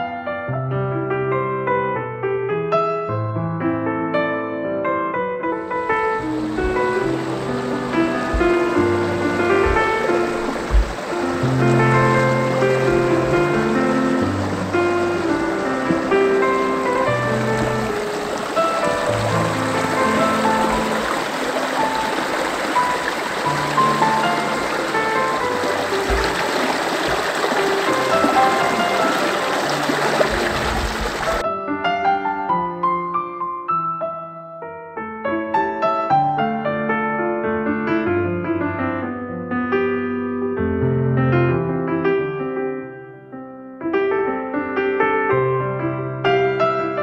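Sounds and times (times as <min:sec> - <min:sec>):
gentle piano music: 0:00.0 - 0:47.0
stream running over rocks: 0:05.7 - 0:31.4.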